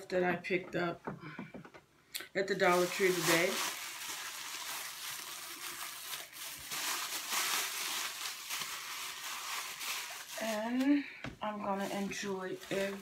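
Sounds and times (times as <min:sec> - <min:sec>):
crinkly wrapping rustling: 0:02.5 - 0:13.0.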